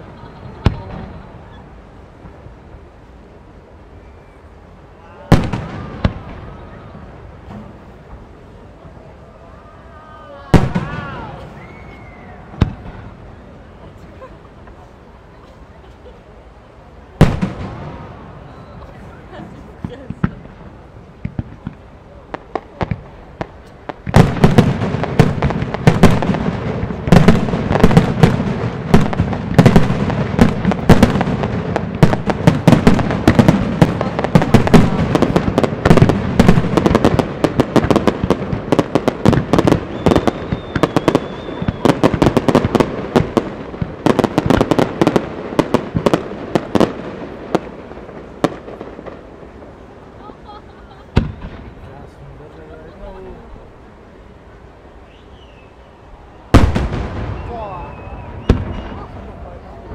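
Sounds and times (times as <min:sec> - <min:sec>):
firework shells bursting: 0:21.2 - 0:47.0.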